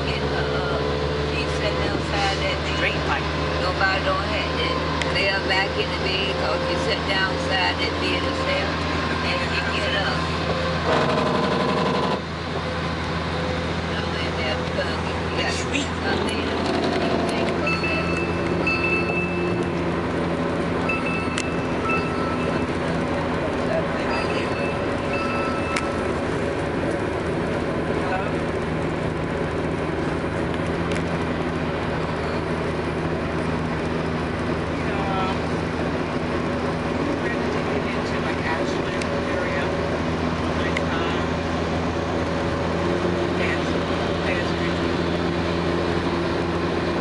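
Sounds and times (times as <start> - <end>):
vehicle engine drone: 0.0 - 47.0.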